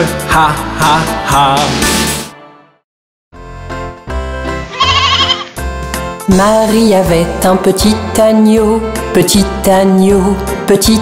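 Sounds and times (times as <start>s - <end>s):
bright instrumental music: 3.4s - 11.0s
lamb bleating: 4.7s - 5.6s.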